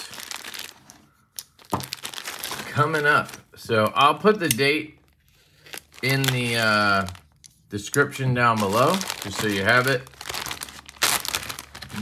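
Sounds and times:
plastic bag crinkling: 0:00.0 - 0:03.5, 0:05.0 - 0:12.0.

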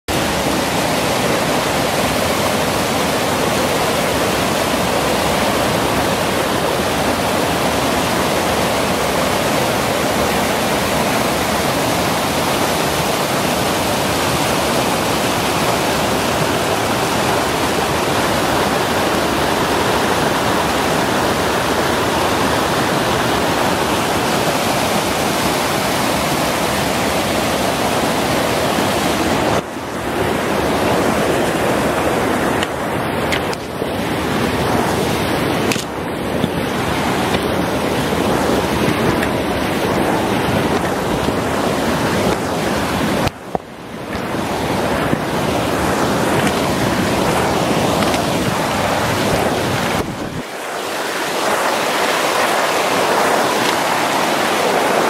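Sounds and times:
mountain stream rushing over boulders: 0:00.0 - 0:55.0.

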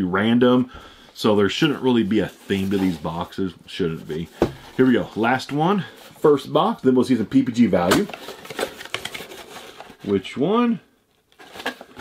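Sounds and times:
cardboard scraping and rustling: 0:02.2 - 0:03.3, 0:11.4 - 0:12.0.

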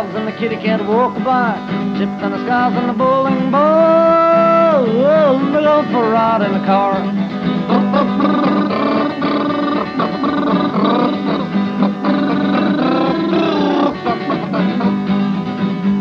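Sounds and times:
wordless vocal sounds: 0:00.0 - 0:15.1
acoustic guitar strumming: 0:00.0 - 0:16.0.

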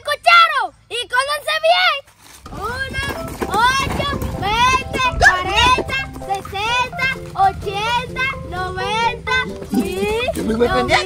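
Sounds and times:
running footsteps on gravel: 0:02.0 - 0:07.9
high-pitched voices calling out: 0:02.5 - 0:11.0.

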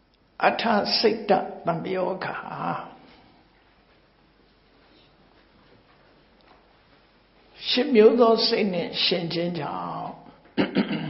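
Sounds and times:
man speaking into a microphone: 0:00.4 - 0:03.2, 0:07.6 - 0:10.4.

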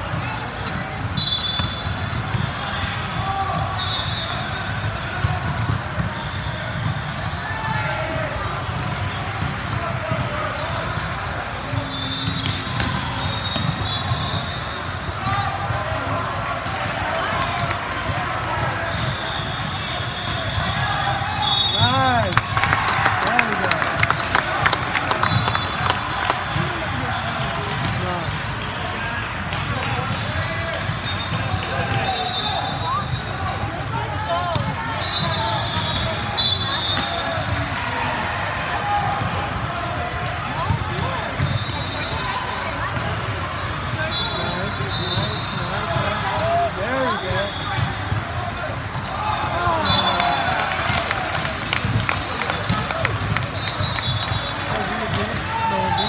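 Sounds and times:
voices echoing in a hall: 0:00.0 - 0:56.0
sneaker squeaks: 0:00.1 - 0:22.3, 0:30.0 - 0:37.7, 0:39.2 - 0:50.3, 0:52.5 - 0:56.0
volleyball hits: 0:04.8 - 0:14.6, 0:42.9 - 0:56.0.

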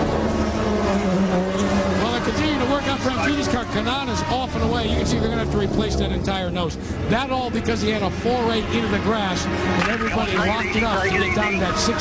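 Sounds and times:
race car engine steady pitch: 0:00.0 - 0:12.0
voices: 0:09.8 - 0:12.0.

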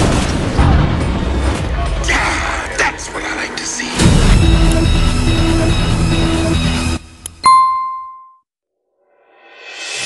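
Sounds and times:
bell ding: 0:07.4 - 0:08.4.

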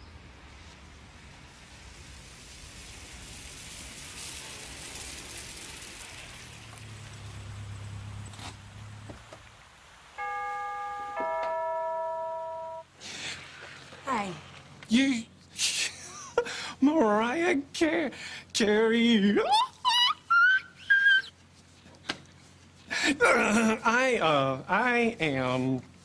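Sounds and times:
doorbell ding-dong chime: 0:10.2 - 0:12.8.

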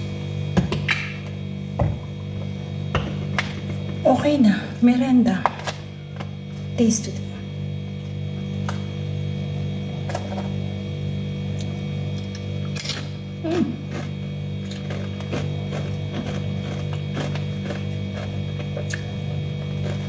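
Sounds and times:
low electrical hum: 0:00.0 - 0:20.0.

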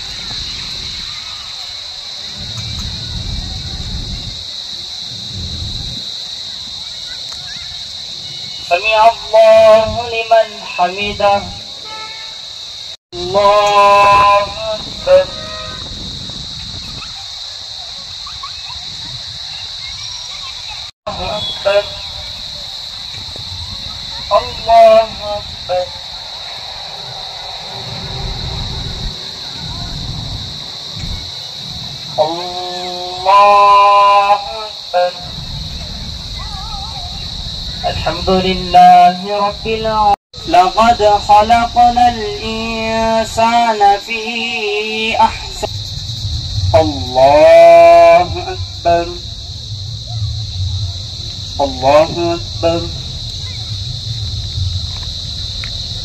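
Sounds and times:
wind rumble on microphone: 0:00.0 - 0:01.4, 0:02.2 - 0:06.8, 0:07.9 - 0:11.8, 0:13.2 - 0:44.2, 0:45.0 - 0:56.0
low rumble: 0:22.0 - 0:32.2, 0:35.3 - 0:38.8, 0:45.6 - 0:56.0.

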